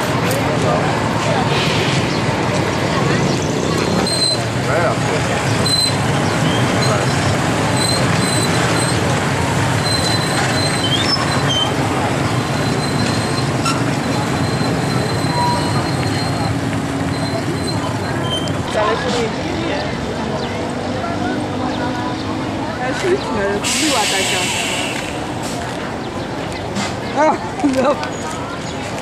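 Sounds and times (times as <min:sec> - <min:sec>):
crowd of voices talking: 0:00.0 - 0:29.0
motorbike engines running: 0:00.0 - 0:29.0.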